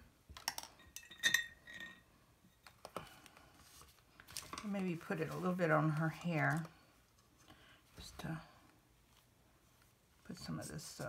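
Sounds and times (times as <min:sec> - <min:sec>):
ringing glass clink: 0:01.0 - 0:02.0.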